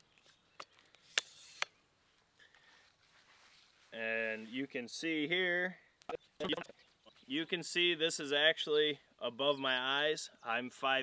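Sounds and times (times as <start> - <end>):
pole sections sliding rasp: 1.1 - 1.7.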